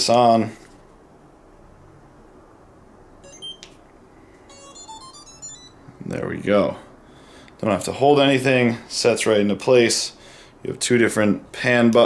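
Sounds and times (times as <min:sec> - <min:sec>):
electronic start-up melody: 0:03.2 - 0:03.6, 0:04.5 - 0:05.9
short electronic beep: 0:03.2 - 0:03.6, 0:04.5 - 0:05.8.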